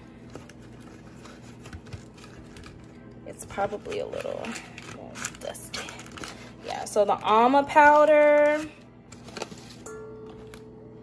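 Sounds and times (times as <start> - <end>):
cardboard box rustling: 0.2 - 2.8.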